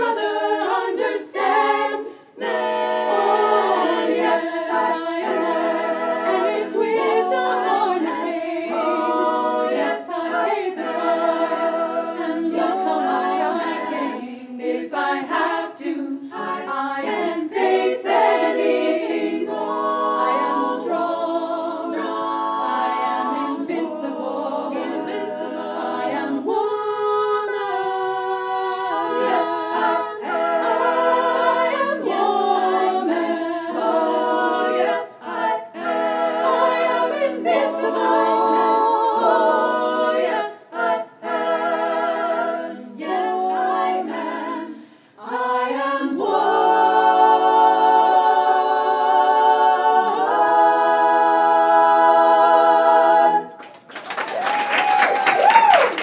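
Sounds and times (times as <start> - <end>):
women's choir singing a cappella: 0.0 - 53.9.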